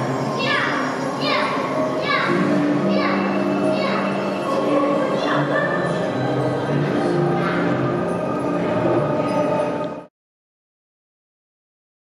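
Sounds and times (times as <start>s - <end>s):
background music: 0.0s - 10.1s
voices including children: 0.4s - 6.1s.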